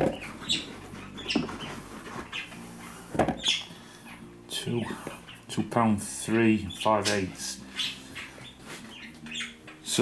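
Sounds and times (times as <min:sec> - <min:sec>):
faint bird chirping: 0:00.0 - 0:10.0.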